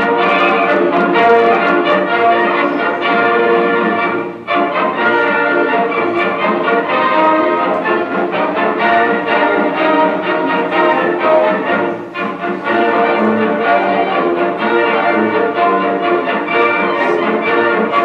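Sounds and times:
orchestral music over loudspeakers: 0.0 - 18.0.

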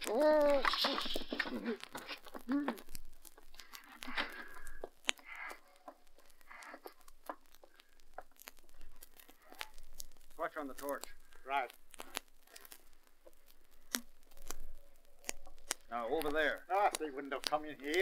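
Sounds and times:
person groaning: 0.0 - 2.8
scattered clicks: 0.0 - 18.0.

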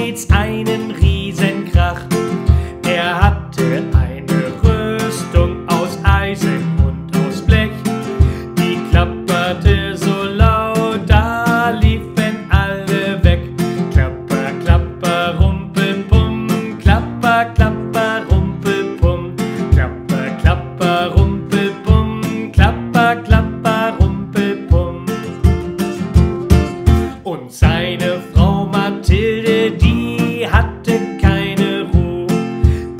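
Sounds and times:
man singing: 0.0 - 32.9
nylon-string guitar strumming: 0.0 - 32.9.

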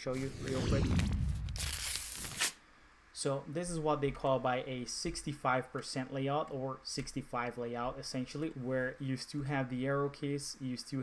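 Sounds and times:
paper tearing rip: 0.2 - 2.6
low whoosh with falling pitch: 0.3 - 2.0.

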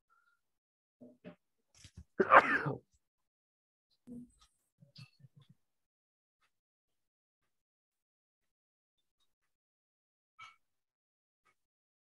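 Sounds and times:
person coughing: 2.2 - 2.8.

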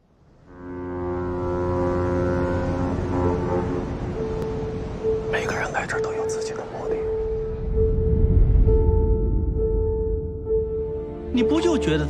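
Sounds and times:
deep sustained tone: 0.4 - 12.0
low rumble: 1.2 - 12.0.

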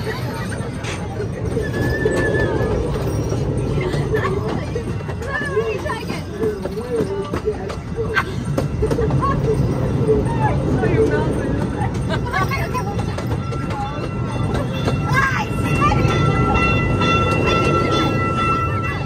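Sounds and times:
people talking nearby: 0.0 - 19.0
small train rumbling on track: 0.0 - 19.0.

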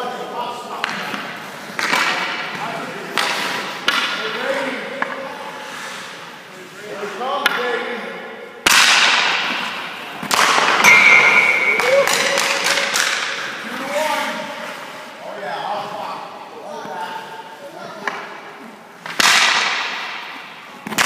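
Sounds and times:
hockey sticks and pucks clacking: 0.0 - 21.0
skates scraping ice: 0.1 - 8.1, 8.7 - 10.9, 11.7 - 21.0.

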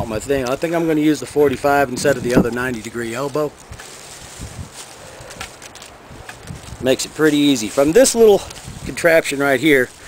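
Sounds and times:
outdoor background noise: 0.0 - 10.0
paper towel rustling: 0.4 - 10.0.

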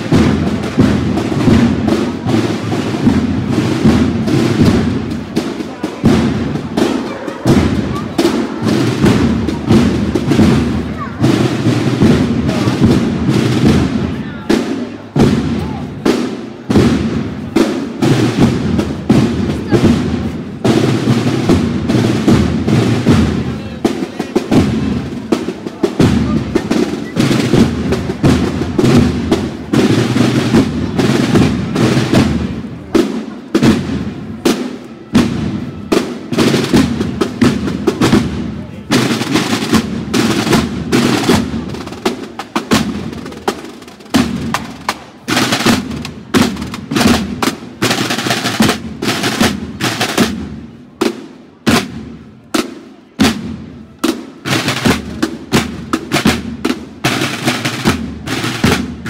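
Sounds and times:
snare drum march beat: 0.0 - 59.0.

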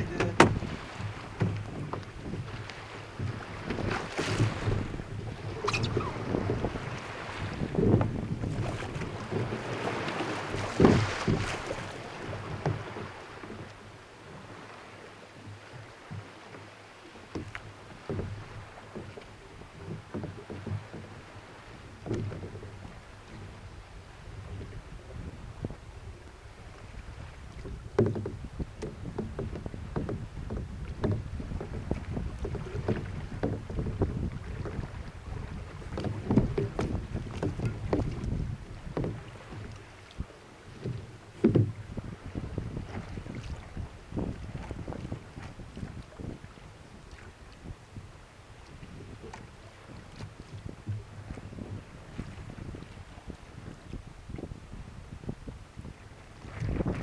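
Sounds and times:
wind rumbling on microphone: 0.0 - 16.6, 17.3 - 57.0
paddle strokes splashing: 0.0 - 57.0
water washing along hull: 0.0 - 57.0.

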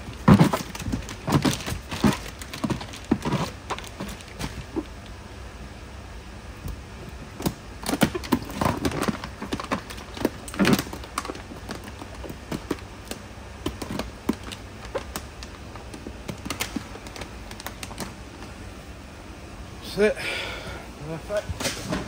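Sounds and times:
plastic bag crinkling: 0.0 - 4.9.

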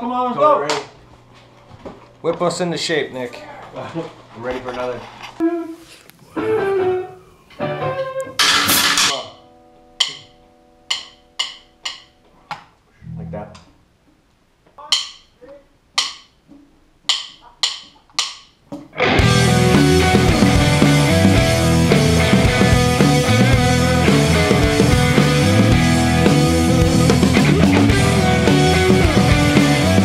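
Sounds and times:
rock band playing: 6.4 - 9.2, 19.0 - 30.0
guitar chord ringing: 6.4 - 12.2, 19.0 - 30.0
cymbal crash: 8.4 - 9.2
drum kit clicks: 10.0 - 10.3, 10.9 - 12.2, 14.9 - 15.3, 15.9 - 30.0.

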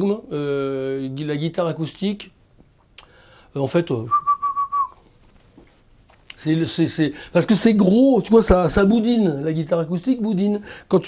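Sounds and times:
man whistling high note: 4.1 - 5.0.

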